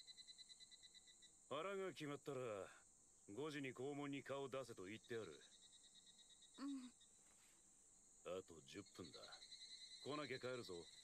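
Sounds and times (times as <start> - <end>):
crickets chirring: 0.0 - 11.0
quiet dialogue: 1.4 - 11.0.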